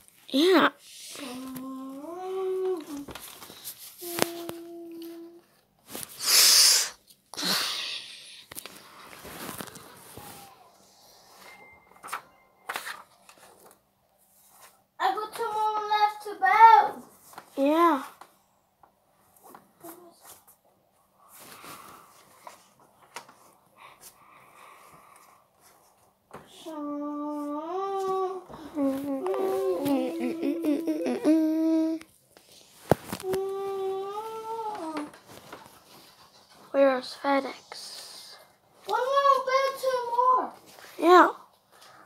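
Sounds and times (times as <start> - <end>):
child humming: 1.1 - 3.1, 26.6 - 32.1, 33.2 - 35.1
child singing wordless tune: 4.0 - 5.5, 15.0 - 18.1, 26.5 - 32.0, 36.8 - 41.3.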